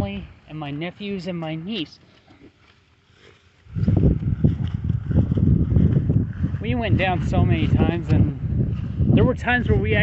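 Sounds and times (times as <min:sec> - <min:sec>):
wind buffeting microphone: 0:03.6 - 0:10.0.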